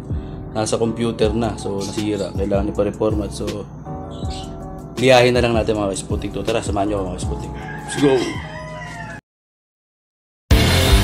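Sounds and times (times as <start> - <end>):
rooster crowing: 7.4 - 9.2.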